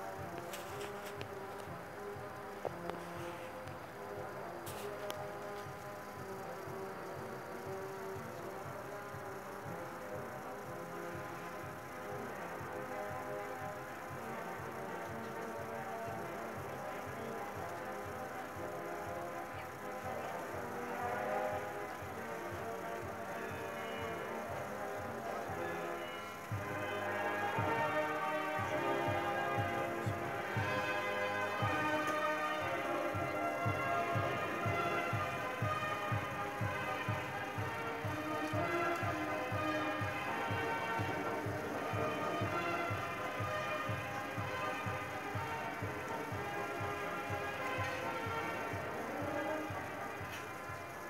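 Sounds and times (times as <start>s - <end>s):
music with sustained notes: 0.0s - 51.0s
steady regular beat: 0.0s - 51.0s.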